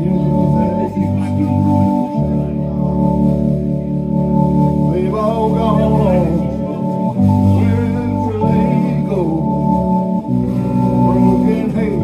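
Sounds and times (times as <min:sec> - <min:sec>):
guitar: 0:00.0 - 0:12.0
live band playing: 0:00.0 - 0:12.0.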